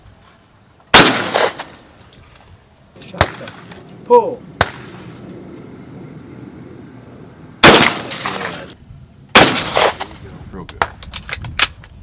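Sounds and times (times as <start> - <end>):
shotgun shots with echo: 0.9 - 1.8, 3.1 - 3.7, 4.6 - 5.1, 7.6 - 8.7, 9.3 - 11.0.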